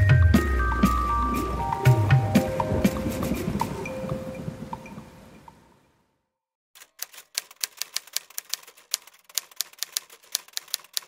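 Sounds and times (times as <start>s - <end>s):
music: 0.0s - 4.4s
typewriter keys clacking: 6.8s - 11.0s.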